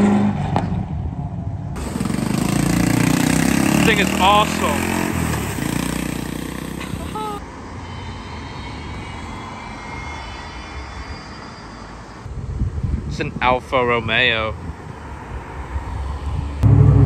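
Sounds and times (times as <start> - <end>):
car engine and tyres approaching: 0.0 - 12.4, 14.6 - 17.0
street background: 0.0 - 17.0
small engine driving away: 1.8 - 7.4.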